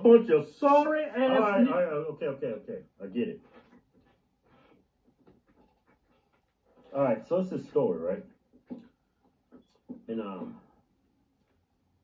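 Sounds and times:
man speaking: 0.0s - 3.6s, 6.9s - 8.4s, 9.9s - 10.7s.

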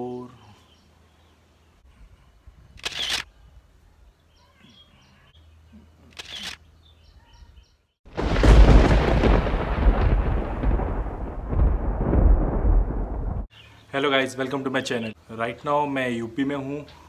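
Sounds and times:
birds chirping: 0.0s - 8.0s, 13.2s - 17.0s
deep cinematic boom: 8.2s - 13.5s.

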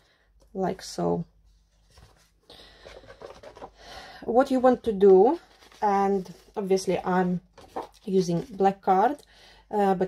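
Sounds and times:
card rubbing and rustling: 1.7s - 3.8s, 5.3s - 6.7s, 7.5s - 8.6s.

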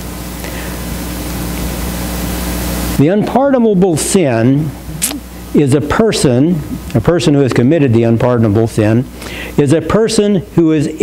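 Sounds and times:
background hiss: 0.0s - 9.8s
low electrical hum: 0.0s - 11.0s.

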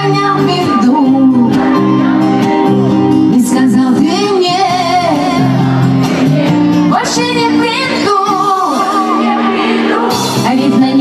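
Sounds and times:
woman singing: 0.0s - 2.0s, 3.2s - 5.6s, 6.7s - 11.0s
live pop song over loudspeakers: 0.0s - 11.0s.

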